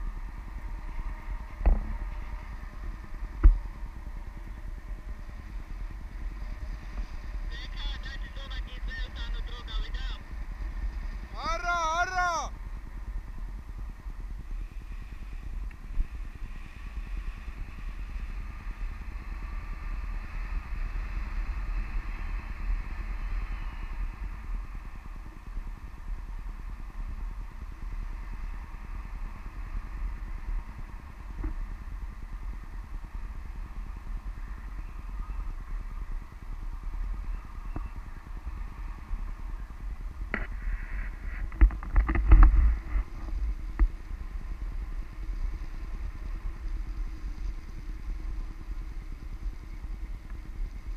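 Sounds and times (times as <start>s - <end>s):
wind buffeting microphone: 0.0s - 50.9s.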